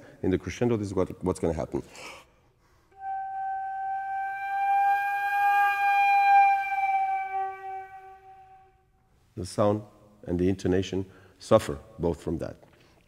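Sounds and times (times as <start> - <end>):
long flute note: 3.0 - 8.9.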